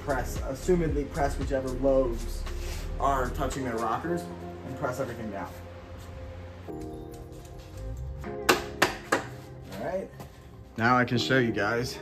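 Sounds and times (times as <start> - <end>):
background music: 0.0 - 12.0
mallet knocks on metal: 8.5 - 9.3.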